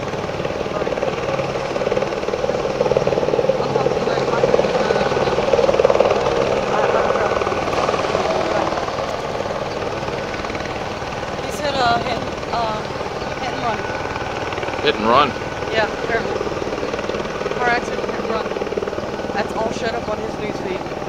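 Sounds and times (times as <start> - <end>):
helicopter rotor beating: 0.0 - 21.0.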